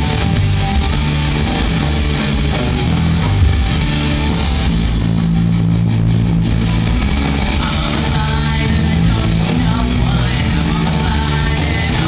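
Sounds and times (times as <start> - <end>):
electric guitar: 0.0 - 12.0
sustained low bass notes: 0.0 - 12.0.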